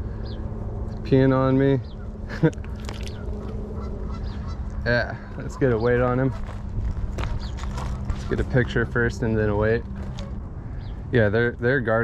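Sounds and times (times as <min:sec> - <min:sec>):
wind rumble on microphone: 0:00.0 - 0:12.0
man laughing: 0:02.2 - 0:02.7.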